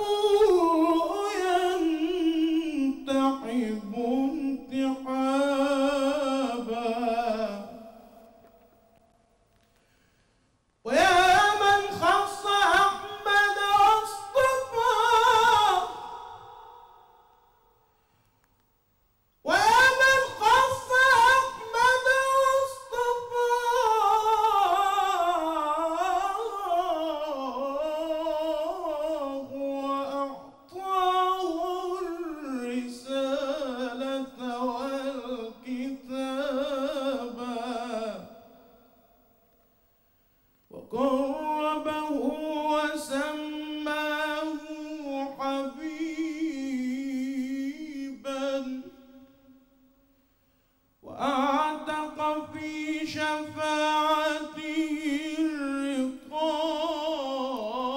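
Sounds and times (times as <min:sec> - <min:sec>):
man singing religious chant solo: 0:00.0 - 0:08.3, 0:10.9 - 0:17.2, 0:19.5 - 0:38.8, 0:40.7 - 0:49.6, 0:51.0 - 0:57.9.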